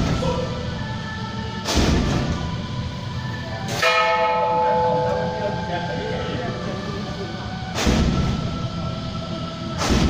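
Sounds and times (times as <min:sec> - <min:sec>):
murmur of people: 0:00.0 - 0:10.0
temple bell ringing: 0:03.7 - 0:07.0.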